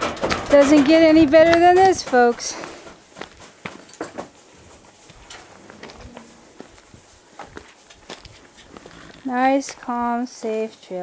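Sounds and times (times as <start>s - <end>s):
knocks in metal trailer: 0.0s - 2.3s
horse hooves shifting on floor: 0.0s - 11.0s.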